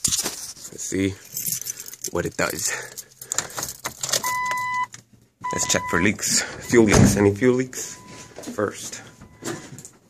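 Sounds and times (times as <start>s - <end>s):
keys rattling: 0.0s - 4.7s
dashboard warning chime: 4.2s - 9.7s.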